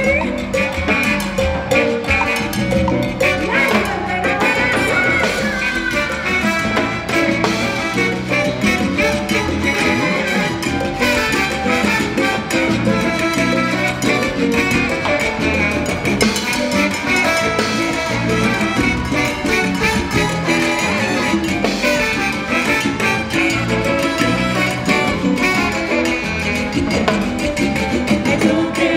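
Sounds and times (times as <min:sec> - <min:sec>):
drum kit: 0:00.0 - 0:28.9
salsa band playing: 0:00.0 - 0:28.9
saxophone: 0:00.0 - 0:28.9.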